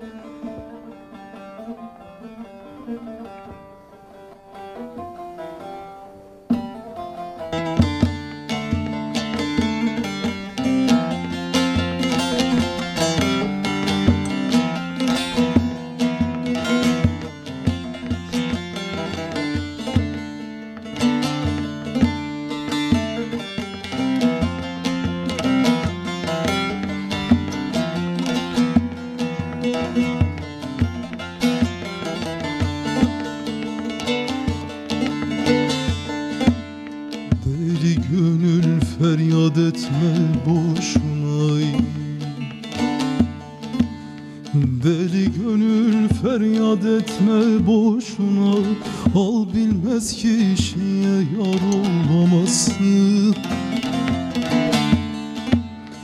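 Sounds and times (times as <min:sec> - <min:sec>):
plucked long-necked lute: 0:00.0 - 0:56.0.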